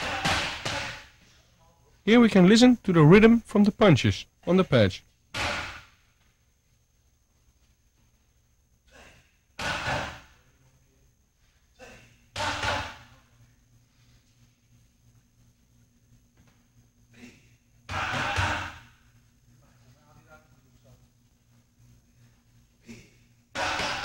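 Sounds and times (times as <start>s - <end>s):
boxing gloves striking punch pads: 0.0s - 1.1s, 5.4s - 5.9s, 12.4s - 13.0s, 17.9s - 18.8s, 23.6s - 24.0s.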